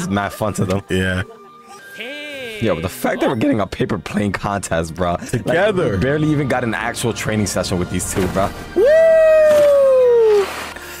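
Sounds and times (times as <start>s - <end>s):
person whooping: 8.8s - 10.6s.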